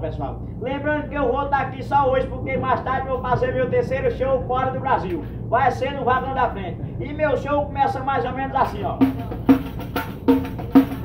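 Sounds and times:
hand drum struck by hand: 9.0s - 11.0s.

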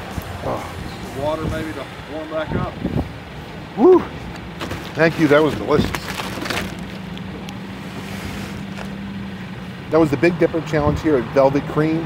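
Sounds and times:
aluminium foil crinkling: 4.6s - 7.2s.

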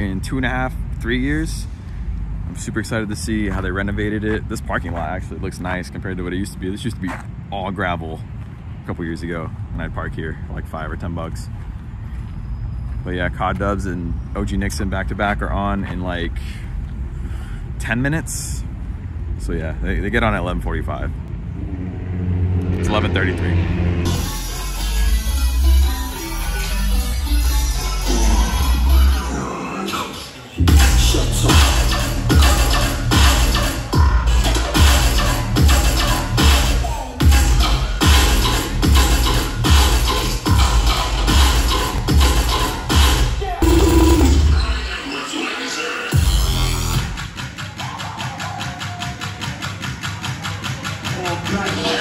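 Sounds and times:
electronic bass music: 21.4s - 29.6s, 30.6s - 45.1s, 46.1s - 52.0s.

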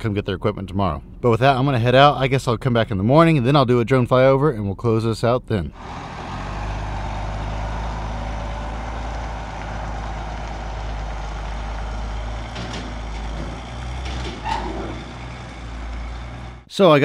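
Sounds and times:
diesel truck engine running: 5.7s - 16.7s.

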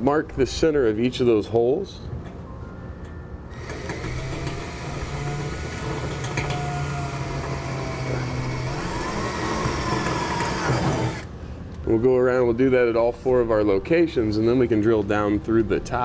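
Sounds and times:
power drill drilling: 3.6s - 11.2s.

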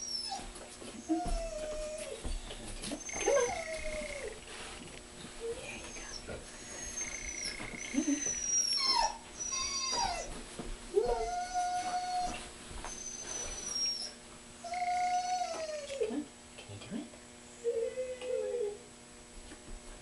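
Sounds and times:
dog whining: 0.0s - 4.5s, 5.4s - 16.1s, 17.6s - 18.9s.

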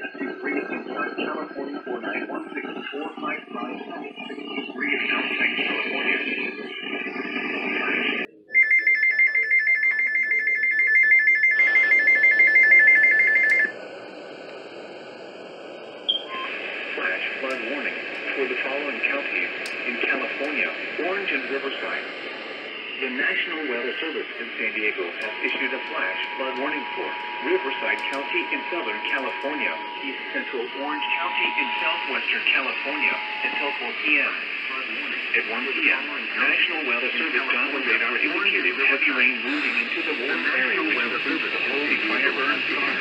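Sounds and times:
broadcast voice: 0.0s - 10.3s, 16.1s - 43.0s
high two-tone data screech: 16.1s - 38.2s
two-tone attention signal: 25.2s - 34.0s.

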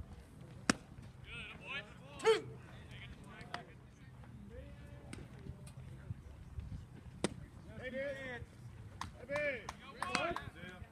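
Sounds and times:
baseball smacking into leather mitt: 0.6s - 0.9s, 7.2s - 7.4s
person shouting calls: 2.2s - 2.6s.

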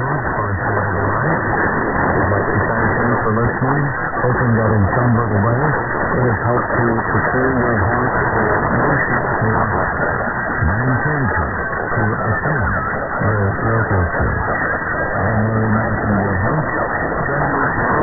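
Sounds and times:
muffled radio music: 0.0s - 18.0s
person speaking on radio: 0.0s - 18.0s
radio static and hiss: 0.0s - 18.0s.

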